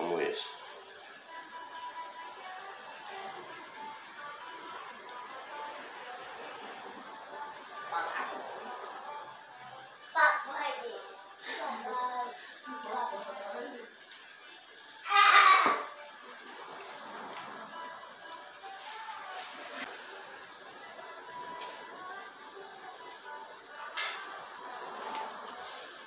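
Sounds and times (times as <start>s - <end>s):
faint voices and chatter: 0.0s - 26.0s.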